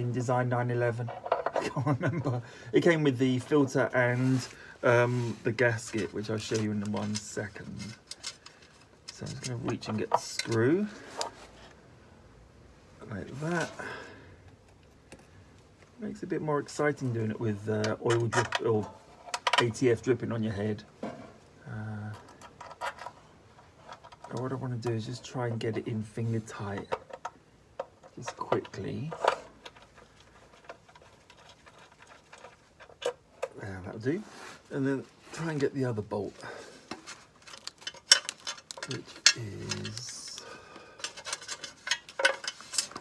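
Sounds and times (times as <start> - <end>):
small metal screw clicking and scraping: 1.0 - 1.6, 5.8 - 11.8, 22.0 - 24.4, 26.7 - 33.6, 36.8 - 43.0
rubbing scrape: 29.1 - 33.0.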